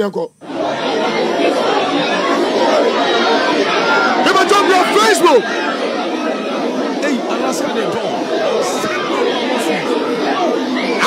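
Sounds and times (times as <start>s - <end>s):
crowd chatter: 0.4s - 11.0s.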